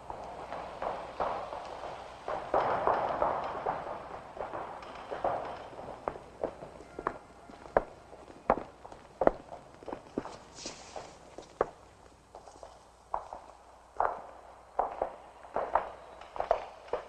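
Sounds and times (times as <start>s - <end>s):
footsteps on hard surface: 4.9s - 14.2s
soft rustling: 5.6s - 13.5s.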